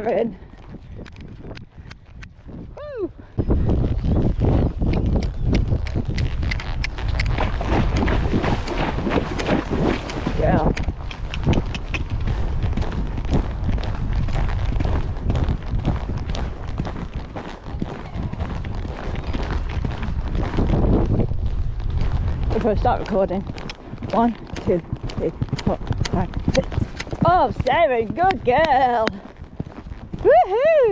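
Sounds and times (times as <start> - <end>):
wind buffeting microphone: 0.0 - 30.9
horse hoofbeats on sand: 3.5 - 30.9.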